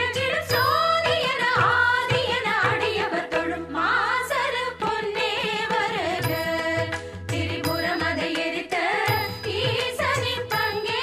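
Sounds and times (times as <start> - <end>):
steady accompanying tones: 0.0 - 11.0.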